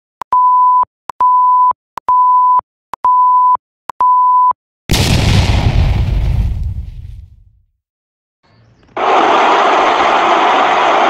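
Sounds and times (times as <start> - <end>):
high countdown beeps: 0.3 - 4.6.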